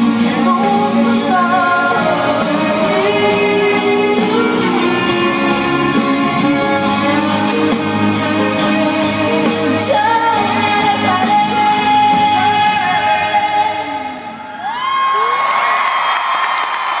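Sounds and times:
woman singing: 0.0 - 14.5
band playing pop music: 0.0 - 14.9.

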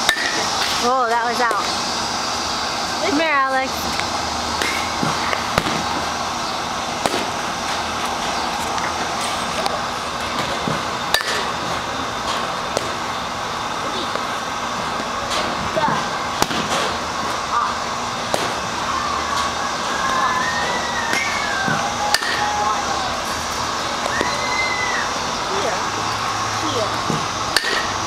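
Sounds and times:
voices: 2.6 - 12.7, 15.0 - 28.0
sharp bat cracks: 7.0 - 7.4, 18.3 - 18.6, 22.1 - 22.4.

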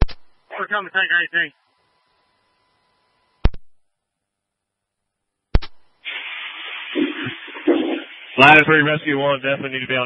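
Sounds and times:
radio click: 0.0 - 0.3, 5.5 - 5.9
radio static hiss: 0.0 - 3.6, 5.5 - 10.0.

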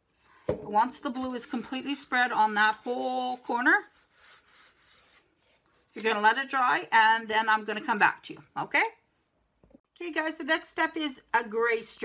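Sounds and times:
fingers smearing paint on cardboard: 1.4 - 5.3.

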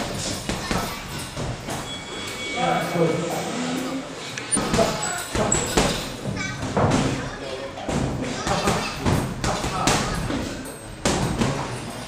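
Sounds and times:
voices calling out: 0.2 - 12.0.

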